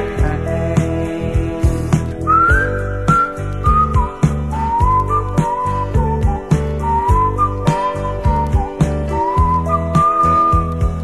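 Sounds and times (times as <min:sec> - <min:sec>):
soul band backing: 0:00.0 - 0:11.0
whistled melody: 0:00.2 - 0:11.0.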